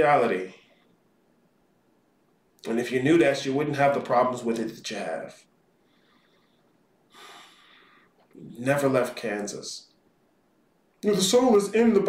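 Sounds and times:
sharp breath in through nose: 5.8s - 8.2s.

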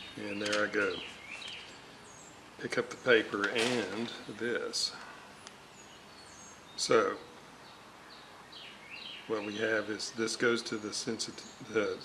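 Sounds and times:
background hiss: 0.0s - 12.0s
person speaking: 0.1s - 1.1s, 2.6s - 5.1s.

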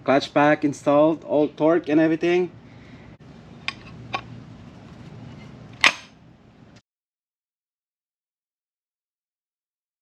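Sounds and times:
low steady hum: 0.0s - 6.8s
metal tool clicks and knocks: 5.8s - 6.2s.

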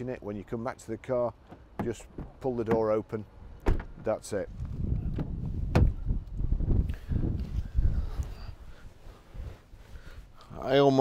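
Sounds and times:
car door latch click: 3.6s - 4.1s, 5.1s - 6.0s.

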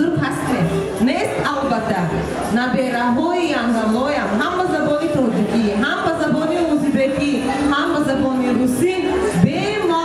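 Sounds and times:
woman speaking into a microphone: 0.0s - 10.0s.

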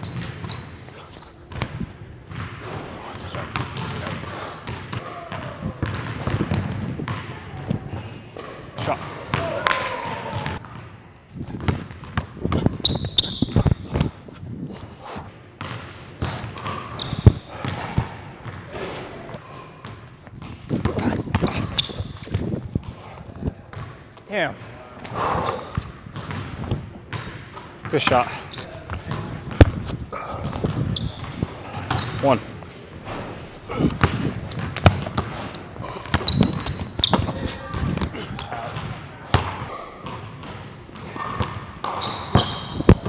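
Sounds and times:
sneaker squeaks on wood: 0.0s - 1.7s, 5.8s - 6.6s, 12.5s - 13.9s, 16.6s - 18.2s, 21.4s - 22.5s, 25.6s - 27.3s, 28.4s - 28.7s, 30.9s - 32.5s, 35.5s - 38.6s, 41.2s - 43.0s.

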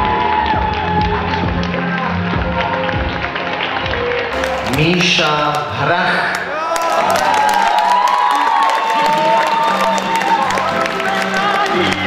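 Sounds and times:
audience cheering and clapping: 0.0s - 12.0s
background music: 0.0s - 12.0s.

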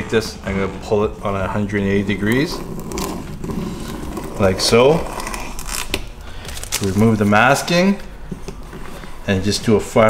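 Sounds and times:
masking tape being peeled: 2.3s - 7.2s.

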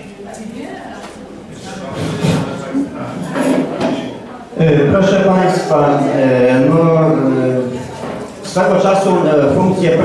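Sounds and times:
murmur of people talking: 0.0s - 10.0s
man speaking loudly: 4.6s - 7.8s, 8.5s - 10.0s.

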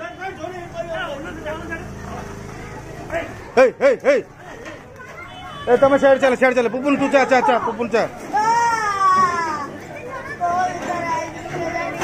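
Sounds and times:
high-pitched human cry: 8.4s - 9.7s.

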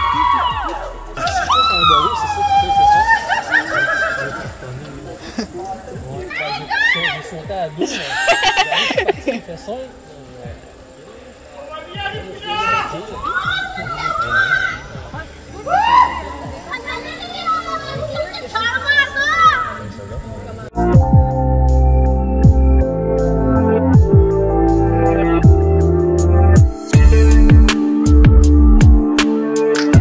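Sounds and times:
quiet voices: 0.0s - 20.8s
high-pitched voices calling out: 11.4s - 20.0s.

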